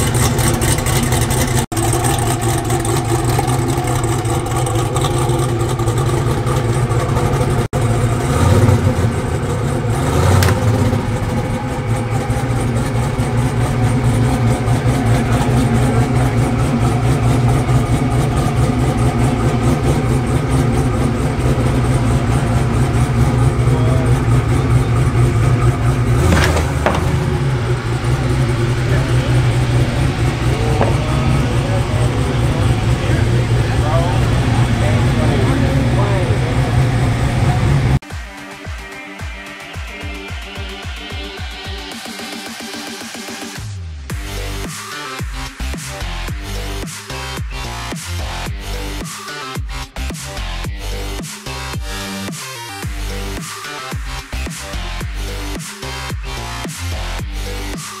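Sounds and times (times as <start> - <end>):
car engine idling: 0.0 - 38.0, 40.1 - 49.0, 49.6 - 57.8.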